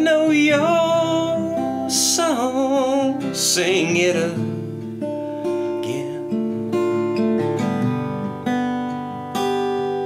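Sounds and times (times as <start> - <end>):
person singing: 0.0 - 4.7, 5.6 - 6.4
acoustic guitar strummed: 0.0 - 10.0.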